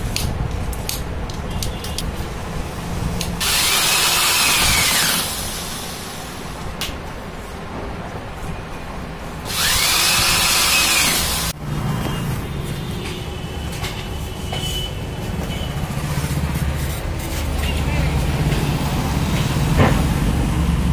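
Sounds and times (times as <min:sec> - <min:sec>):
cordless drill whining: 0:03.4 - 0:05.8, 0:09.5 - 0:11.5.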